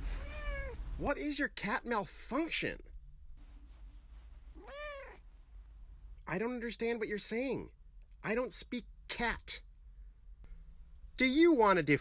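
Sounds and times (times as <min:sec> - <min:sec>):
cat meowing: 0:00.1 - 0:00.8, 0:04.6 - 0:05.2.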